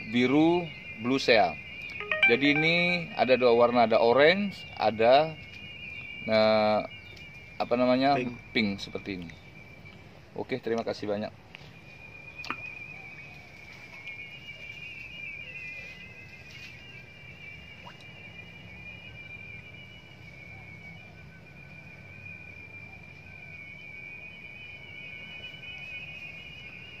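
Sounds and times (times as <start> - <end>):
insects trilling: 0.0 - 27.0.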